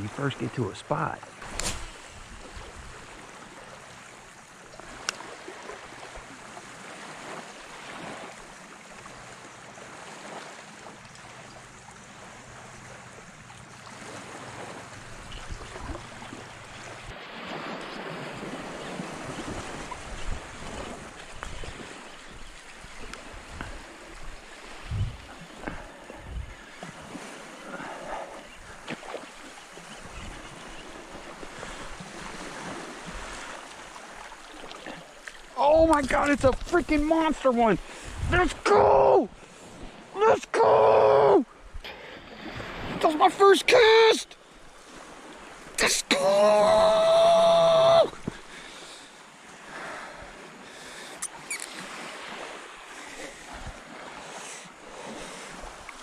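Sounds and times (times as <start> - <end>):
creek water running: 0.0 - 56.0
wind on microphone: 15.1 - 16.1, 17.6 - 27.2, 37.8 - 38.9.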